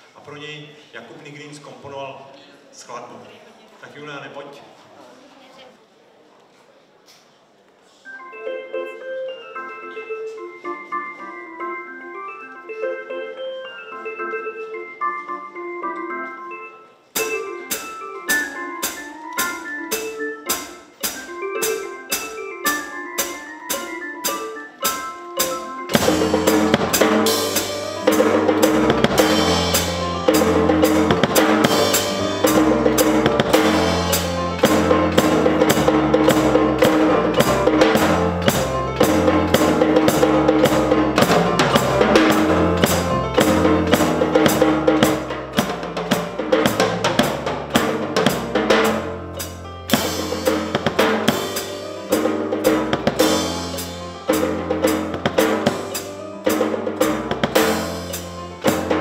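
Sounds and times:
melodic backing track: 8.1s - 59.0s
drum kit beat: 17.2s - 59.0s
bass line: 25.9s - 55.9s.

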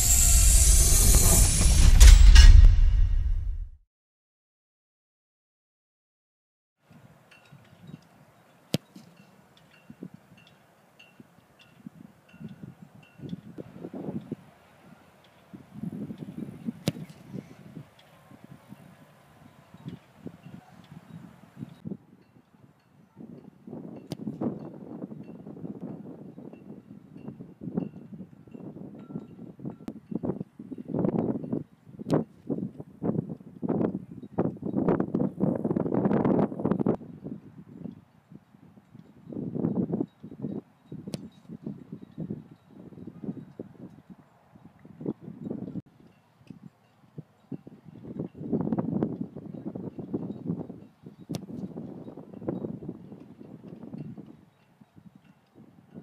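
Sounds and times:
wind buffeting microphone: 11.8s - 14.5s, 15.4s - 22.3s, 23.2s - 56.0s
foot kicking football thump: 16.8s - 17.1s.

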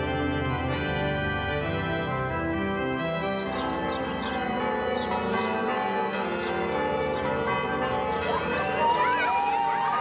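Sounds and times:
church bells ringing: 0.0s - 10.0s.

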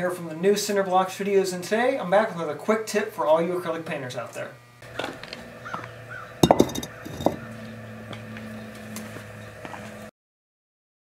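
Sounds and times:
concrete block knocking and clattering: 6.4s - 7.4s.

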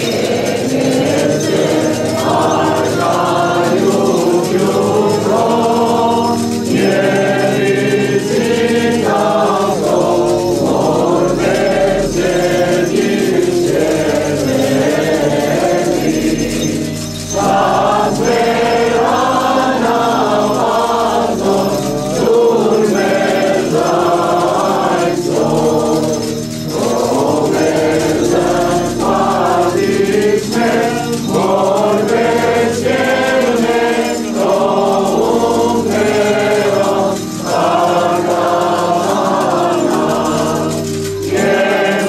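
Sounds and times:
electronic keyboard sustained chords: 0.0s - 42.0s
women's choir singing a hymn: 0.0s - 42.0s.

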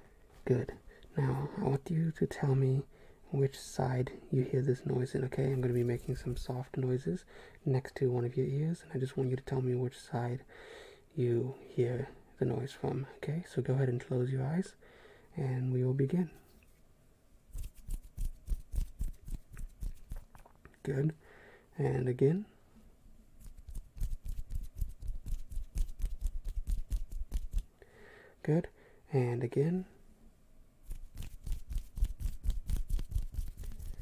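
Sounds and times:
small clicks and scratches: 17.6s - 20.6s, 30.9s - 34.0s.

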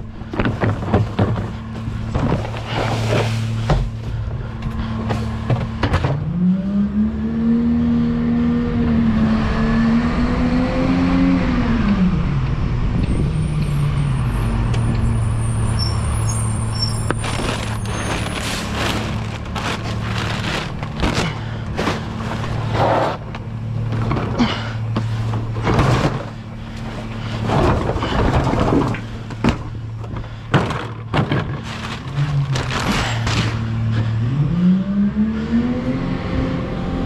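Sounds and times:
garbage truck diesel engine: 0.0s - 10.4s, 11.0s - 37.0s
metal clatter and rattling: 0.2s - 4.2s, 17.2s - 33.7s.

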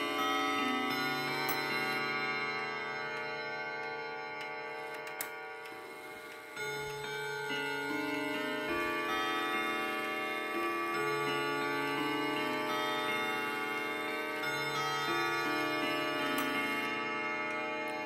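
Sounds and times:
clock chimes ringing: 0.0s - 18.0s.

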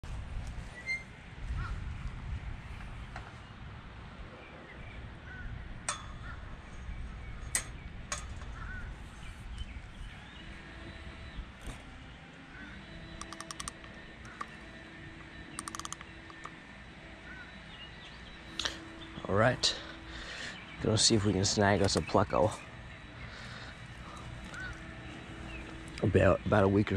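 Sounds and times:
wind rumble on microphone: 0.0s - 13.2s
faint steady hum: 0.0s - 26.9s
birds calling: 0.6s - 1.9s, 2.6s - 26.9s
crow-like caws: 6.2s - 6.6s, 8.5s - 8.9s, 17.2s - 17.6s, 23.3s - 25.0s
sharp clicks: 13.2s - 14.6s, 15.2s - 16.6s, 21.8s - 22.1s.

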